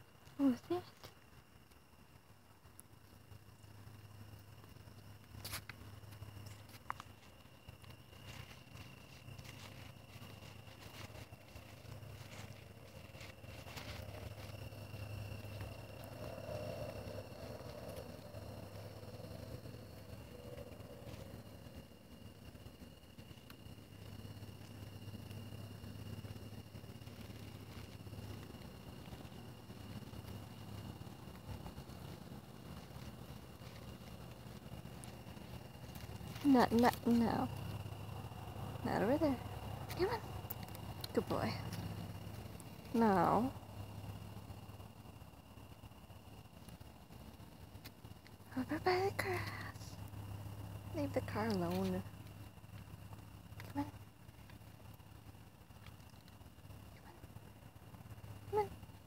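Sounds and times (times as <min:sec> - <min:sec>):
steady low rumble: 0:00.0 - 0:59.0
low hum: 0:02.0 - 0:59.0.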